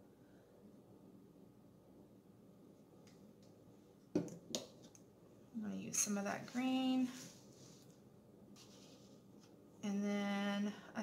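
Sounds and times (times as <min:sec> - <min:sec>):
woman speaking: 0:05.6 - 0:07.3, 0:09.8 - 0:11.0
paintbrush rubbing in paint: 0:06.4 - 0:08.0, 0:08.6 - 0:09.5.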